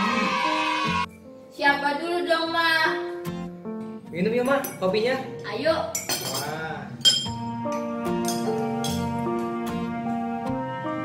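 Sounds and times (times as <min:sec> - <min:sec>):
soft background music: 0:00.0 - 0:11.0
teaspoon clinking on cup: 0:05.9 - 0:09.1.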